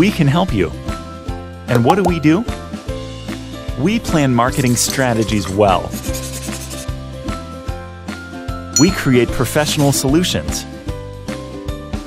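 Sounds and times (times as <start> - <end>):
marker rubbing on whiteboard: 4.5 - 7.0.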